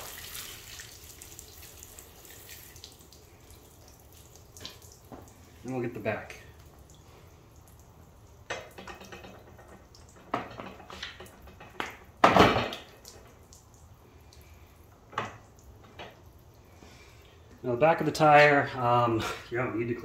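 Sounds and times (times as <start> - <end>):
water dripping: 0.0 - 17.7.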